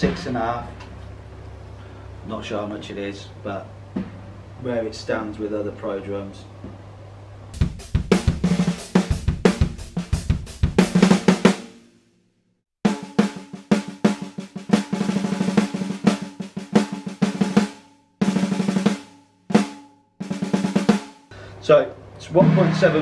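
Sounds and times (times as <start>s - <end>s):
snare drum strokes and rolls: 7.6s - 11.7s, 12.9s - 21.1s, 22.3s - 23.0s.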